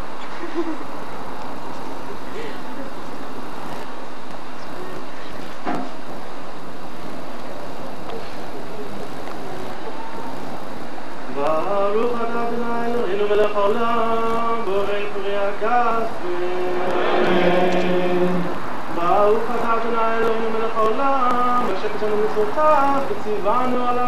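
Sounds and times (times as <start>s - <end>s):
outdoor background noise: 0.0s - 24.0s
man chanting long notes: 16.2s - 20.7s.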